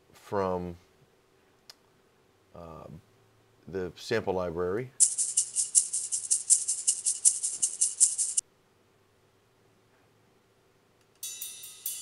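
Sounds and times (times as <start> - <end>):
shaker-like percussion loop: 5.0 - 8.4.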